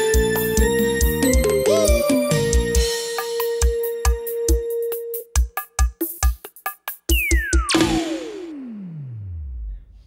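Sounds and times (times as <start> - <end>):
synthesizer falling pitch sweep: 7.5 - 10.0.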